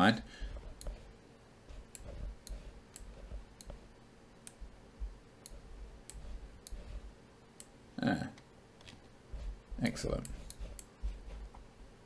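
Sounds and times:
low room rumble: 0:00.0 - 0:12.0
computer mouse clicks: 0:00.5 - 0:01.0, 0:01.8 - 0:03.8, 0:04.4 - 0:04.7, 0:05.4 - 0:07.0.

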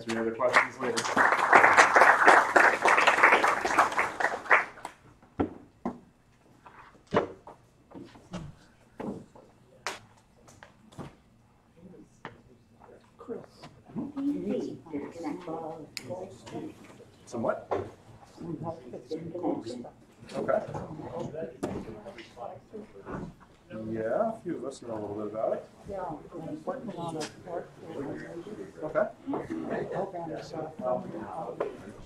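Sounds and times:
crowd applauding: 0:00.0 - 0:05.0.

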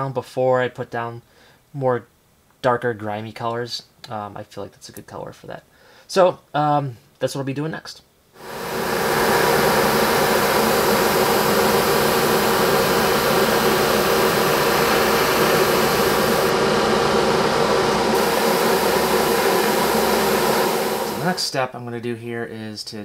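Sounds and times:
airbrush hissing: 0:08.4 - 0:21.4
motor-like hum: 0:08.4 - 0:21.4.

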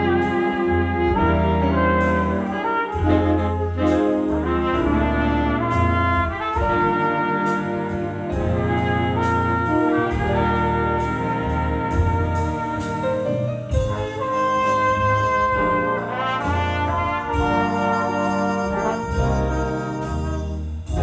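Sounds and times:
big band playing: 0:00.0 - 0:21.0.

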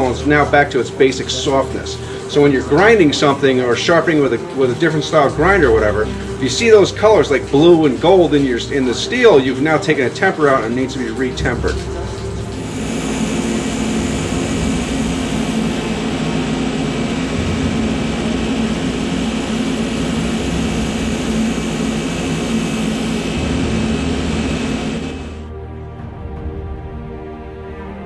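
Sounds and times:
belt grinder grinding steel: 0:12.6 - 0:25.4.

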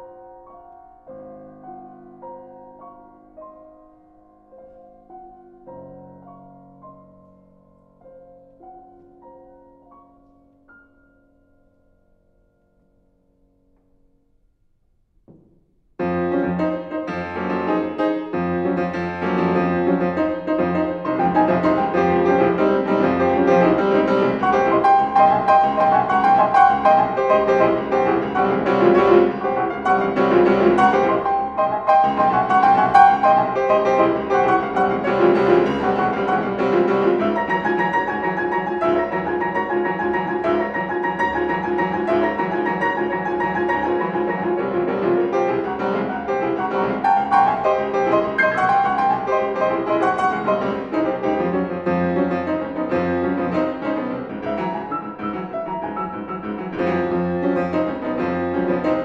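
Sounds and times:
two pianos playing: 0:00.0 - 0:14.1, 0:16.0 - 0:59.0.

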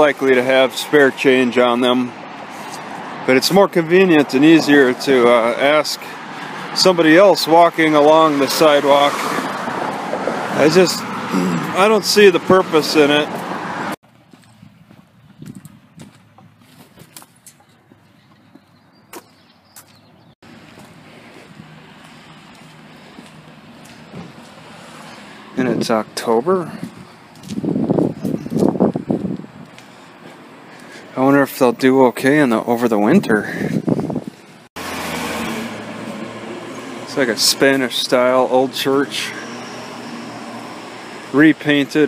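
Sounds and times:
distant car traffic: 0:00.0 - 0:42.0.

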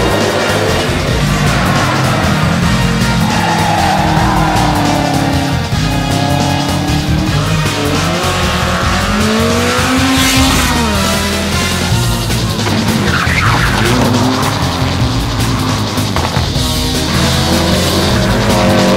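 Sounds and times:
background music: 0:00.0 - 0:18.9
rally car engines revving: 0:00.0 - 0:18.9
tyres squealing: 0:00.0 - 0:18.9.

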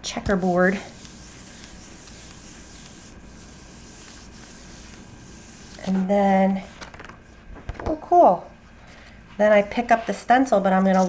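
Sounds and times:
hands rubbing paper: 0:00.3 - 0:07.3.

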